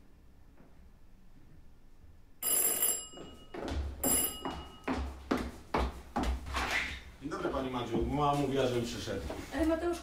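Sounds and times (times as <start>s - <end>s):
doorbell ringing: 2.4s - 5.0s.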